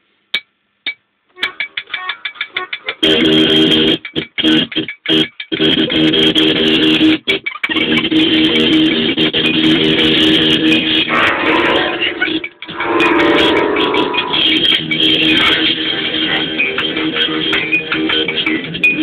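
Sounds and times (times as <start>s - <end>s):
one-string guitar: 9.9s - 19.0s
accordion chords: 11.1s - 15.8s.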